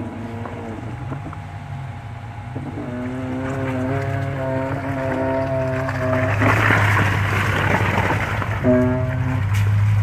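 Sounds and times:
vehicle engine low rumble: 0:00.0 - 0:10.0.

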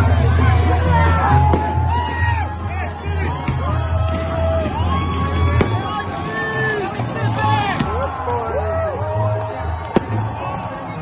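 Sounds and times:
crowd voices: 0:00.0 - 0:11.0
music: 0:00.0 - 0:11.0
fireworks going off: 0:03.3 - 0:08.0.

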